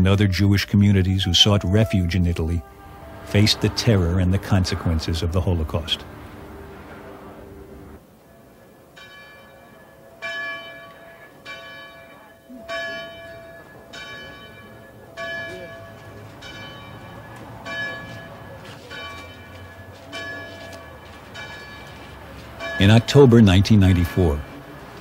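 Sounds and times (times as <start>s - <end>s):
bell tolling slowly: 0.0s - 25.0s.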